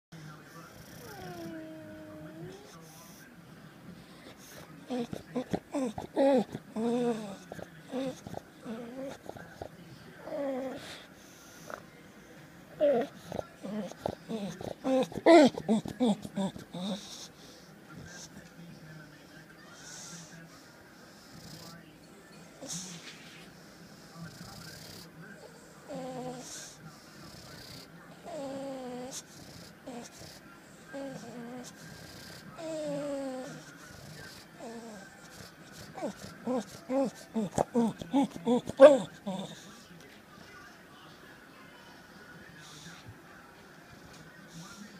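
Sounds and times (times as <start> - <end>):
dog's noisy nasal breathing: 10.5 - 18.5, 19.6 - 21.8, 22.6 - 39.8
dog whining: 32.6 - 33.7, 35.9 - 39.6.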